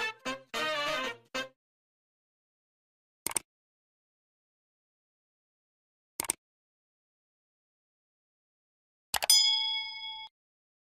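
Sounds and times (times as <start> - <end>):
quick clicks: 3.2 - 3.5, 6.2 - 6.4
notification bell ding: 9.3 - 10.3.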